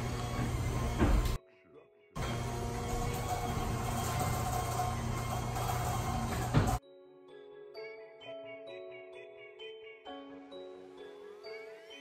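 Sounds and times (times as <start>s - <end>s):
garage door opener motor humming: 0.0s - 1.4s, 2.2s - 6.8s.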